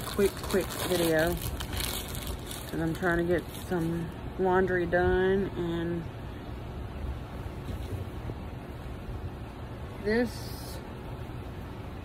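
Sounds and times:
air buffeting microphone: 0.0 - 10.2.

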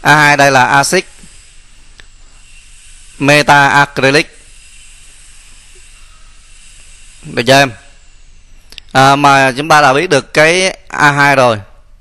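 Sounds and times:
low hum: 0.0 - 9.0
microphone hiss: 0.0 - 12.0.

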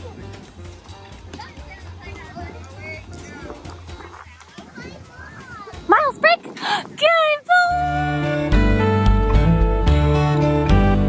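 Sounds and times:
children playing and chattering: 0.0 - 8.6.

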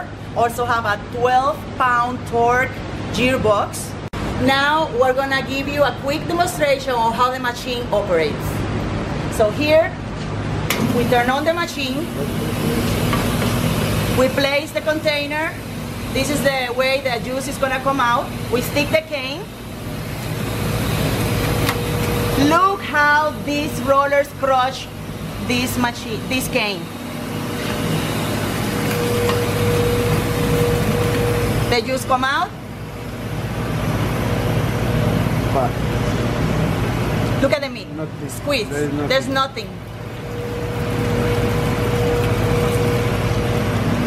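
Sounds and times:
juicer motor humming: 10.7 - 44.0.

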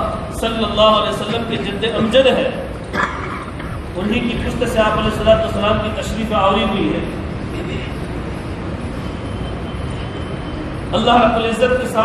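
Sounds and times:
rushing hiss with low rumble: 3.5 - 9.0
man's voice: 4.0 - 7.1.

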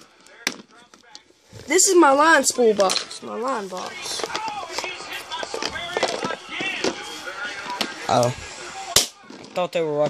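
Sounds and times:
plastic boxes being handled: 3.7 - 8.0.

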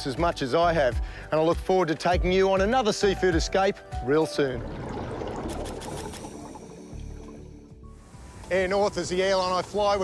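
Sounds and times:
underwater bubbling: 4.5 - 7.8.

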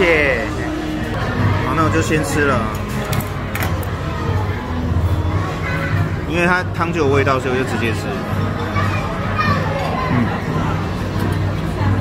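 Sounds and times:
diners chatting: 0.0 - 12.0.

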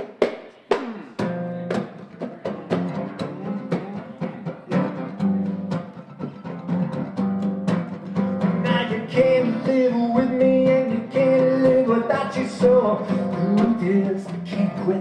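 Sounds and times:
drum hits: 0.0 - 5.4
acoustic guitar strummed: 0.6 - 15.0.

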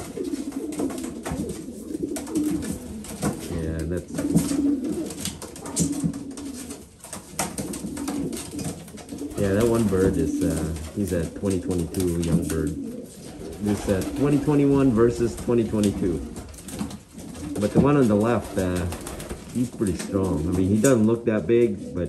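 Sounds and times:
pigeons cooing: 0.0 - 22.0
pigeons scuffling: 0.0 - 22.0
wing slaps: 13.4 - 19.7.

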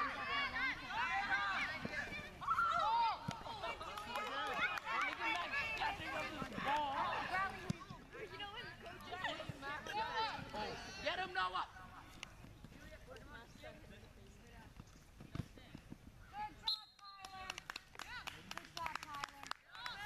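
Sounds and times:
open-air background noise: 0.0 - 20.0.

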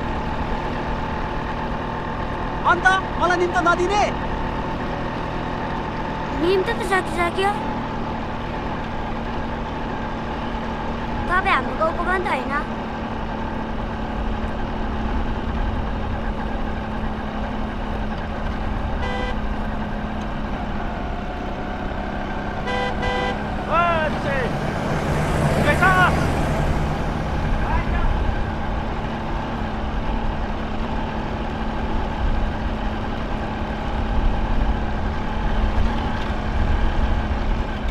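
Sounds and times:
vehicle engine rumbling: 0.0 - 37.9
horn toots: 18.9 - 19.5, 22.6 - 24.2.

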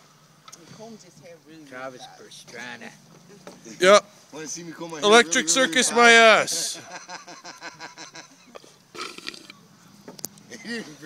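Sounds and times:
men laughing: 5.0 - 8.8.

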